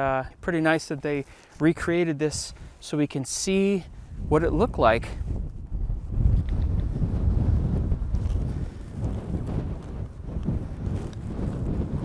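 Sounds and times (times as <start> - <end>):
wind buffeting microphone: 3.5 - 12.0.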